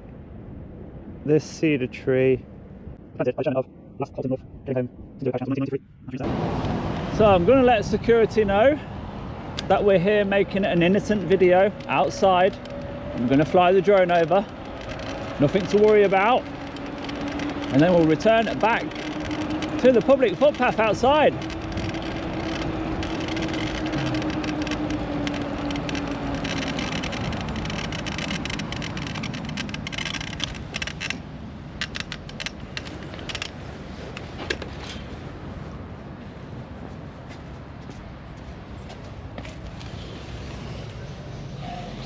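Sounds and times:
wind rushing over camera: 0.0 - 37.8
bike tyre noise: 9.9 - 35.4, 39.0 - 42.0
clicks and scrapes: 12.5 - 31.2, 31.8 - 35.1
steady motor whine: 14.4 - 28.2.

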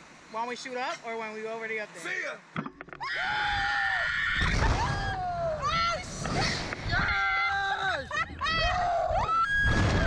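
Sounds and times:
people screaming and laughing: 3.8 - 10.0.

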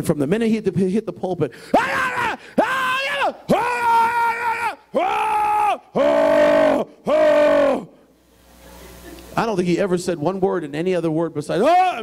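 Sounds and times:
man shouting through a microphone: 1.7 - 7.9, 11.4 - 12.0.

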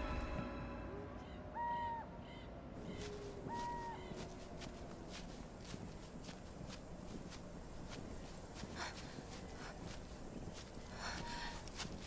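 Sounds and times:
faint outdoor ambience: 0.0 - 12.0
short bird calls: 1.4 - 4.6
light footsteps: 2.8 - 12.0.

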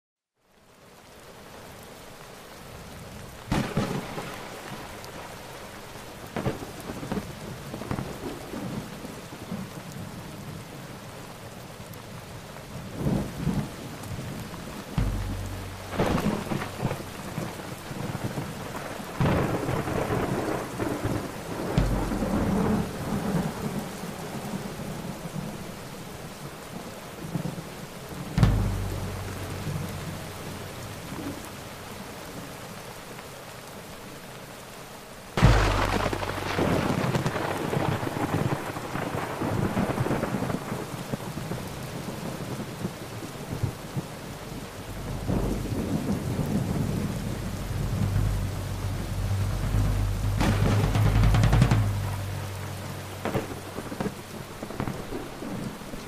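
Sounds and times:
heavy rain: 0.4 - 56.0
thunder cracks and rumbles: 12.9 - 25.5, 27.2 - 32.0, 35.4 - 56.0.

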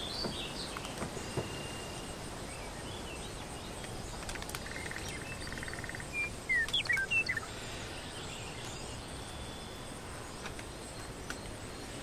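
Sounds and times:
bird chirps: 0.0 - 12.0
soft forest hiss: 0.0 - 12.0.

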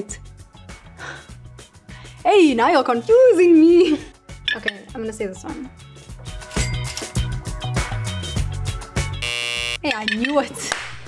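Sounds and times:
music with steady beat: 5.7 - 9.8
game show buzzer: 9.2 - 9.8.

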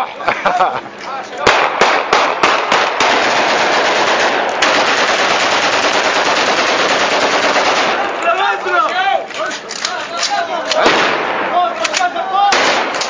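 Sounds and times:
gunshots: 1.4 - 8.4, 10.2 - 13.0
rapid automatic gunfire: 1.5 - 8.2, 12.5 - 13.0.

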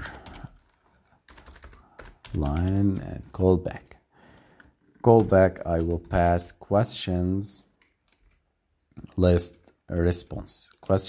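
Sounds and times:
computer keyboard typing: 0.0 - 3.9, 4.5 - 6.6, 7.7 - 8.4.

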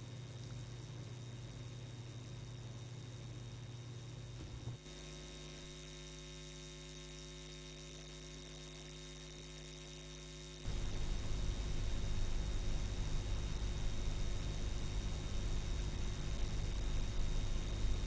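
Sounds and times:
old film soundtrack rumble and hiss: 0.0 - 6.0, 9.8 - 18.0
electrical mains hum: 0.0 - 18.0.

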